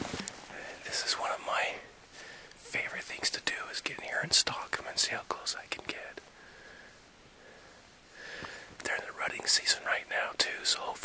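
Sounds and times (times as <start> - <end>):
man whispering: 0.5 - 6.4, 8.8 - 11.0.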